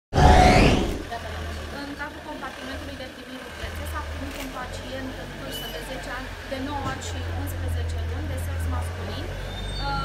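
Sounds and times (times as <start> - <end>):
rising whoosh: 0.1 - 1.1
vehicle engine idling: 1.0 - 9.7.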